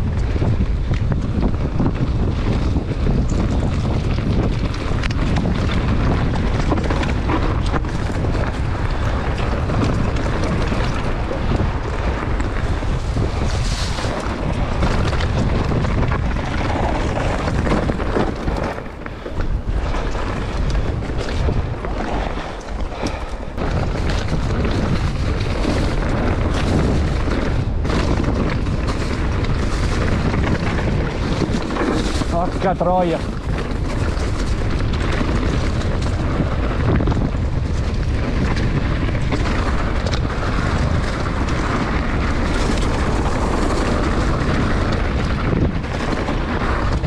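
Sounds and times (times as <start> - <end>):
bike rattling over rough ground: 0.0 - 47.0
bike tyre noise: 0.0 - 47.0
wind buffeting microphone: 0.0 - 47.0.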